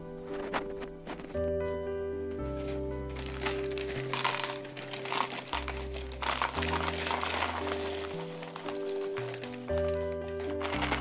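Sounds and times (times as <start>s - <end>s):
plastic snack bag crinkling: 2.5s - 11.0s
snacks falling into plastic container: 2.6s - 11.0s.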